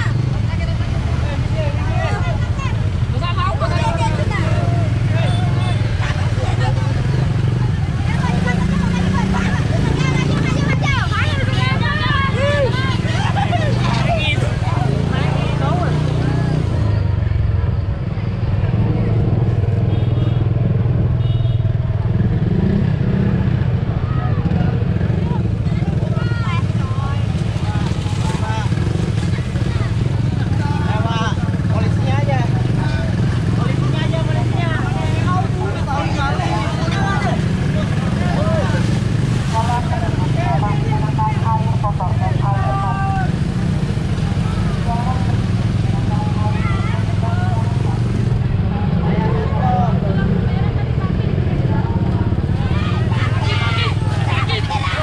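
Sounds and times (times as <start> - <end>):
motorcycle engine: 0.0 - 55.0
people calling and shouting: 0.0 - 55.0
road rumble: 0.0 - 55.0.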